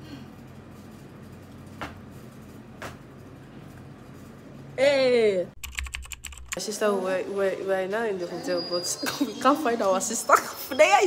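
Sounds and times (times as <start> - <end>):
rapid clicking: 5.6 - 6.6.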